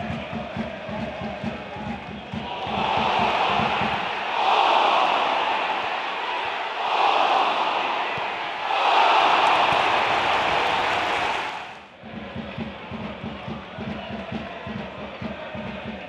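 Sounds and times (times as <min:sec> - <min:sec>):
stadium crowd roaring: 0:00.0 - 0:16.0.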